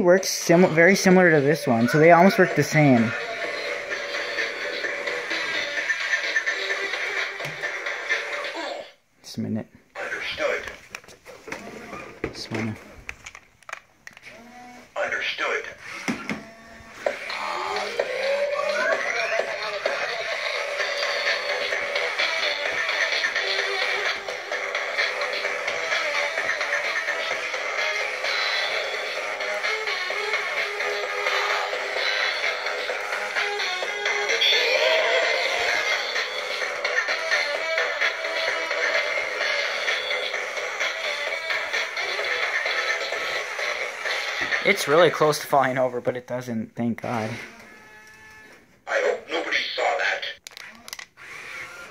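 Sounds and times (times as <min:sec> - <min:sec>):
synthetic voice: 0:00.0 - 0:03.6, 0:17.2 - 0:22.2, 0:48.9 - 0:50.4
toy robot playing music: 0:00.4 - 0:08.6, 0:16.4 - 0:44.9.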